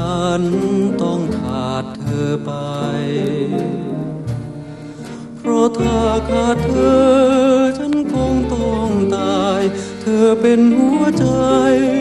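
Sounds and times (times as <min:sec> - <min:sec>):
man singing love song: 0:00.0 - 0:04.3, 0:05.2 - 0:12.0
band accompaniment: 0:00.0 - 0:12.0.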